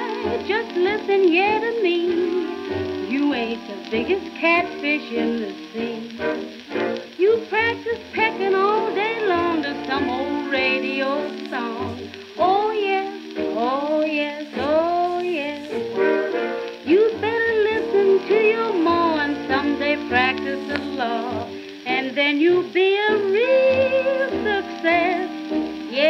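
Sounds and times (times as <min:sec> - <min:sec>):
record surface crackle and hiss: 0:00.0 - 0:26.0
swing dance band music: 0:00.0 - 0:26.0.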